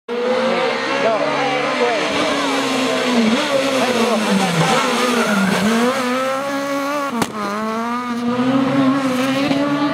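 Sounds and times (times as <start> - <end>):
rally car engine revving: 0.1 - 9.9
sharp crack: 7.1 - 7.5.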